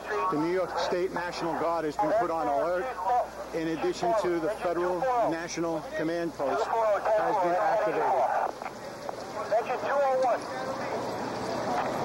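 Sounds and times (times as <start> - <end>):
steady noise: 0.0 - 12.0
voices talking: 0.0 - 12.0.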